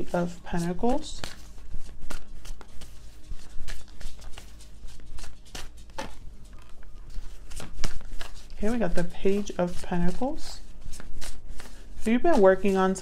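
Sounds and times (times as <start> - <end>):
cards being shuffled: 0.0 - 13.0
low steady hum: 0.0 - 13.0.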